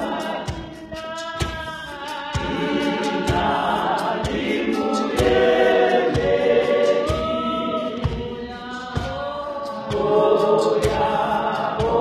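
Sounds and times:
women's choir singing gospel: 0:00.0 - 0:12.0.

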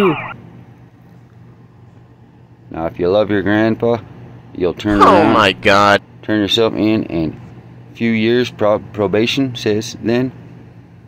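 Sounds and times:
siren yelping: 0:00.0 - 0:00.4
faint low hum: 0:04.8 - 0:06.0.

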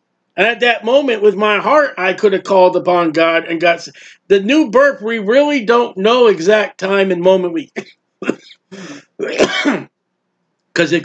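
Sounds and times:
man clearing throat: 0:07.7 - 0:09.9.

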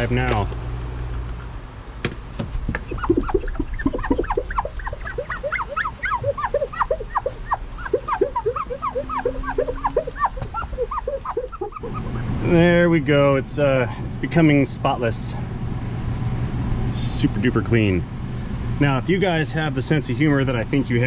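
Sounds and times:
rag squeaking on window glass: 0:02.7 - 0:12.2.

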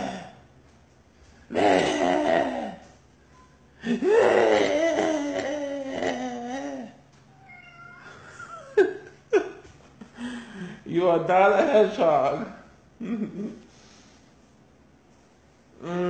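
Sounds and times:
man moaning: 0:00.0 - 0:00.4, 0:01.5 - 0:03.0, 0:03.8 - 0:07.0, 0:15.8 - 0:16.0.

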